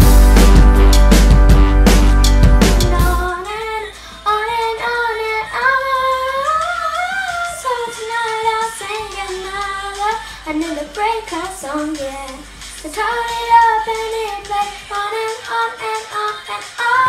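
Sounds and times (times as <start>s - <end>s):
drum-backed music: 0.0s - 17.0s
girl singing unaccompanied: 2.8s - 17.0s.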